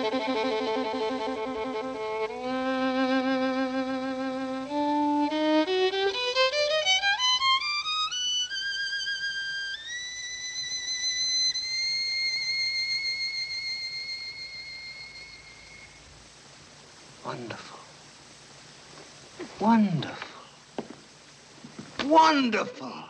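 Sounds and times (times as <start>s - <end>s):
solo violin playing: 0.0s - 16.0s.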